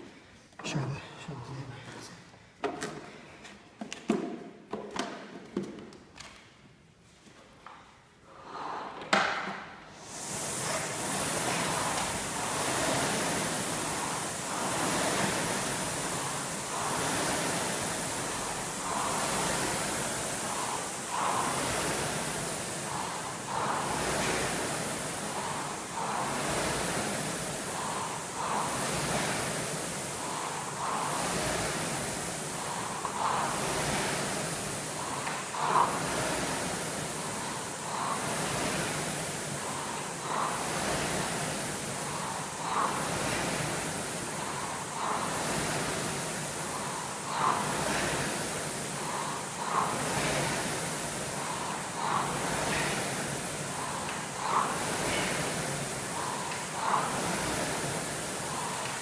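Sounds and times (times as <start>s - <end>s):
rowing machine flywheel whooshing: 8.2s - 59.0s.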